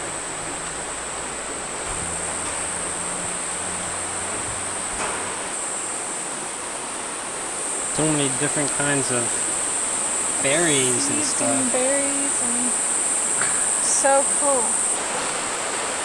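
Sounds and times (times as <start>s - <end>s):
even hiss: 1.8s - 16.0s
high-pitched insect drone: 7.5s - 15.0s.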